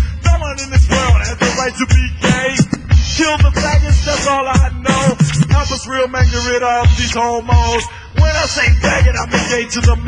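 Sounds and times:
hip hop beat: 0.0 - 10.0
man rapping: 0.0 - 10.0.

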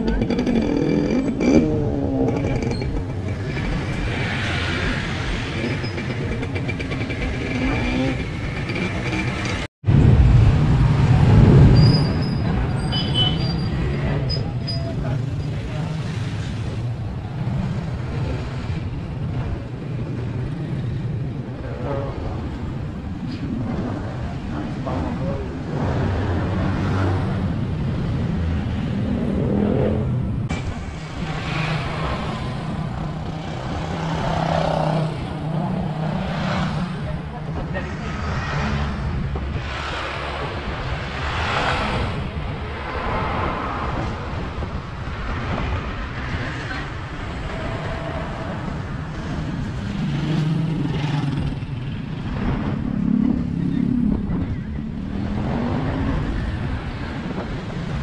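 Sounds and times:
passing traffic: 0.0 - 58.0
road and traffic noise: 0.0 - 58.0.

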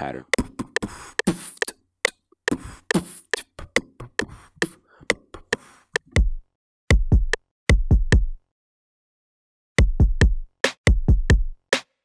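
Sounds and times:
person beatboxing: 0.0 - 6.2.

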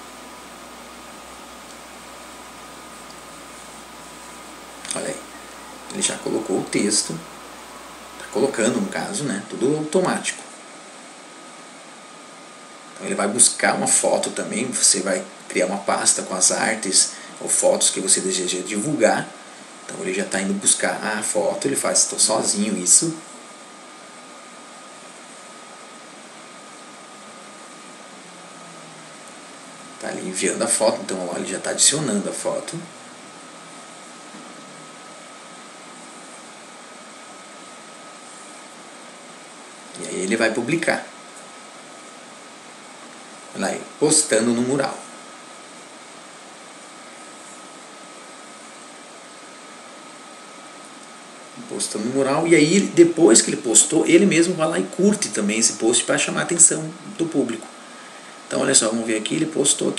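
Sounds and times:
faint continuous high tone: 0.0 - 9.8
background hiss: 0.0 - 10.4, 12.6 - 59.9
faint high-pitched whine: 0.0 - 10.6.

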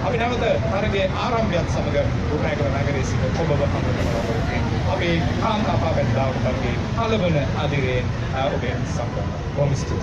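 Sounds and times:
man speaking into a microphone: 0.0 - 10.0.

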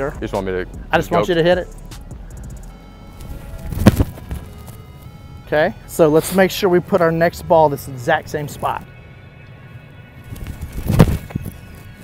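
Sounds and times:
faint background music: 0.0 - 12.0
foot kicking a football: 3.6 - 4.6.

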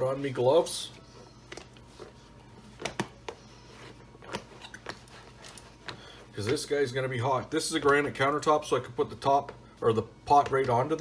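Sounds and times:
rubber gloves rubbing and snapping: 2.7 - 6.8.

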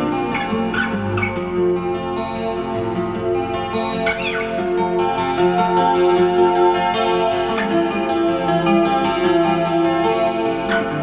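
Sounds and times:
twelve-string acoustic guitar: 0.0 - 11.0
guitar string squeak: 0.3 - 1.4, 3.8 - 4.6.

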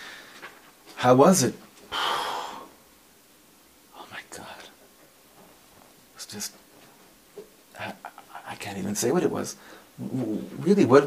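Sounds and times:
man whispering: 3.9 - 4.8, 6.2 - 6.6, 7.7 - 11.0.

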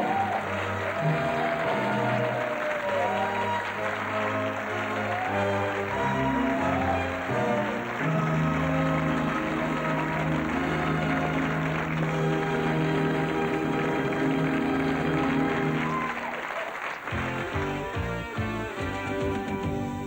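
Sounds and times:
studio audience applauding: 0.0 - 20.0.

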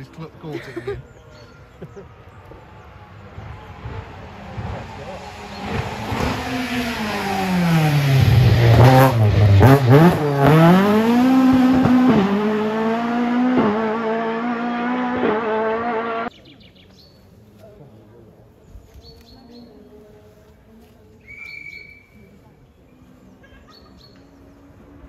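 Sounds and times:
rally car engine passing: 1.6 - 16.3.

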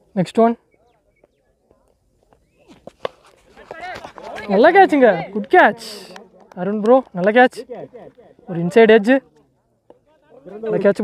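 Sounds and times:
faint distant voices: 0.6 - 11.0.

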